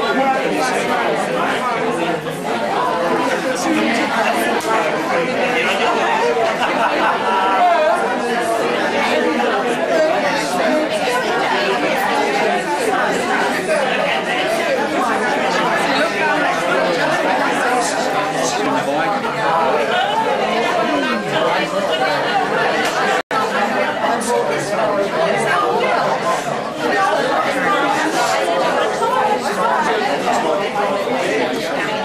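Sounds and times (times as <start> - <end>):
crowd chatter: 0.0 - 32.0.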